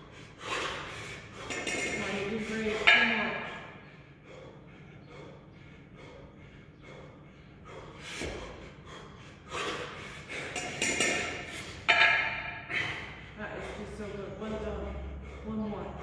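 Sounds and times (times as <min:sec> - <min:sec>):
man breathing heavily: 0:00.0 - 0:16.0.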